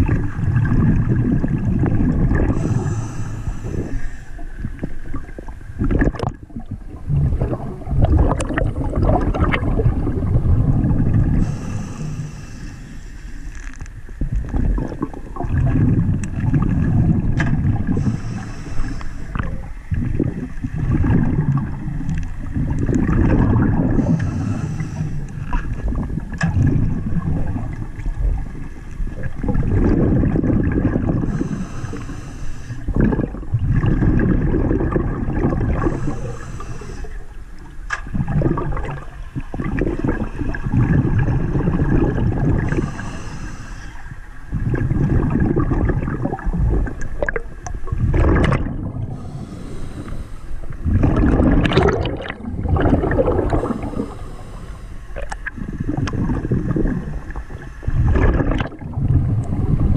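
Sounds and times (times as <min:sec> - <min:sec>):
underwater water gurgling: 0:00.0 - 0:59.9.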